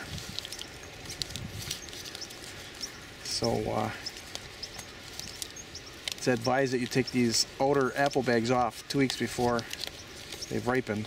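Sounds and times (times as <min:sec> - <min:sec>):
leaves brushing: 0:00.0 - 0:11.0
paper bag crinkling: 0:00.0 - 0:11.0.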